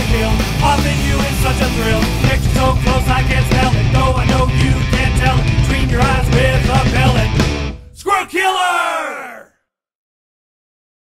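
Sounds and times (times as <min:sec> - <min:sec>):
long falling cry: 0:08.0 - 0:09.5
person shouting: 0:08.0 - 0:09.5.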